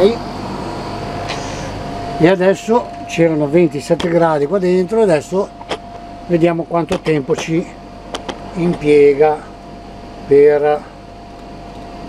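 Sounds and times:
air conditioner running: 0.0s - 12.0s.

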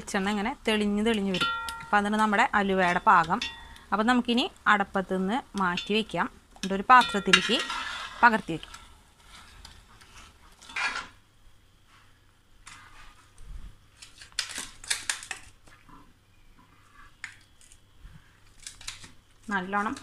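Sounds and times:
metal spatula scraping pan: 6.9s - 11.2s.

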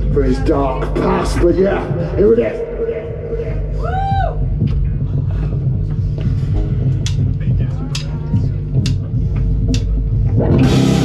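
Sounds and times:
electric bass low notes: 0.0s - 11.0s
electric guitar low notes: 6.5s - 11.0s.

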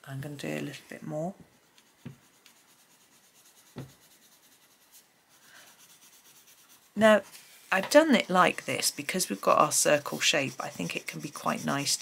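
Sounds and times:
pencil scratching on paper: 1.5s - 12.0s.

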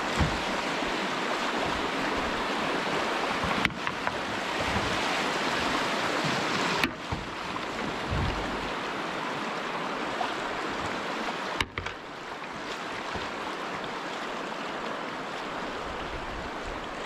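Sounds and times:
brook water rushing: 0.0s - 17.0s.

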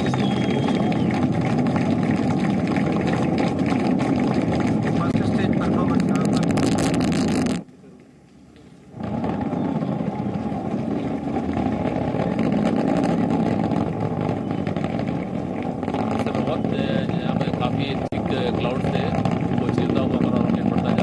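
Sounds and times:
rocket roar: 0.0s - 7.7s, 8.9s - 21.0s.

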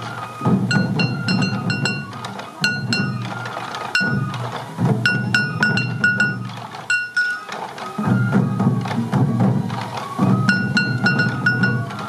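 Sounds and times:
taiko drums beaten with sticks: 0.0s - 12.0s.

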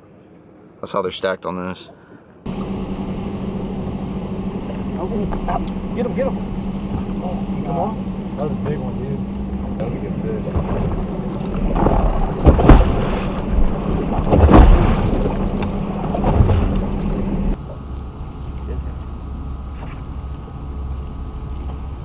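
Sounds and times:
steady low hum: 1.9s - 22.0s
faint high whine: 2.5s - 22.0s
loud thumps: 10.4s - 17.6s.

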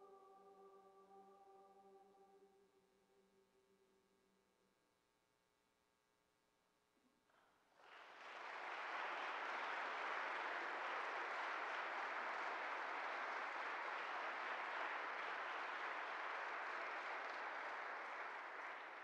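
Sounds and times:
audience applauding: 7.8s - 19.0s.

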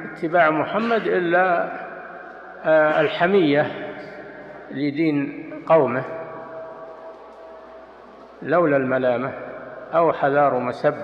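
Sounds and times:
man speaking: 0.0s - 1.9s, 2.6s - 6.1s, 8.4s - 11.0s.

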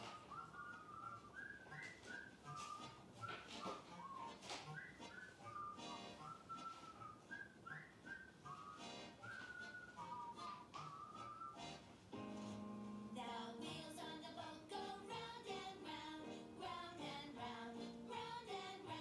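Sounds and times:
whistled tune: 0.0s - 11.9s
light backing music: 0.0s - 19.0s.

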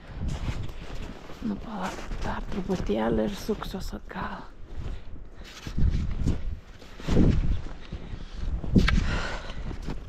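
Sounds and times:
footsteps in deep snow: 0.0s - 10.0s.

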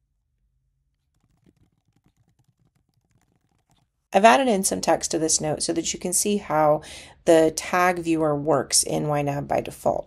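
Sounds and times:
rapid keyboard typing: 1.0s - 3.9s.

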